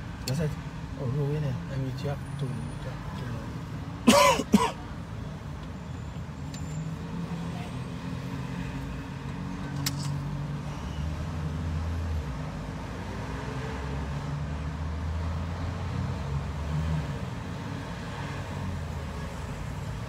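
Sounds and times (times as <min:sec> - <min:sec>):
road rumble: 0:00.0 - 0:20.0.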